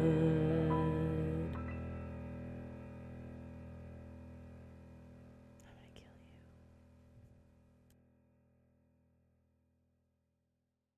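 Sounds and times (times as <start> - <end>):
faint whisper: 5.6 - 6.6.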